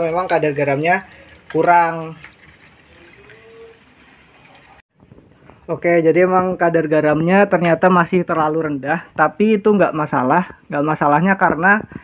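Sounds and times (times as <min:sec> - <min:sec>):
water trickling through aquarium filter: 0:00.0 - 0:04.8.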